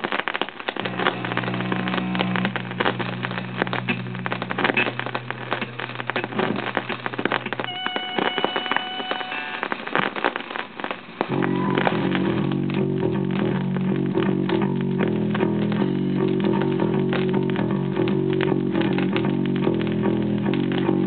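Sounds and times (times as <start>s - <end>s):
vinyl crackle and pops: 0.0s - 21.0s
higher held tones: 0.8s - 9.9s, 11.3s - 12.8s.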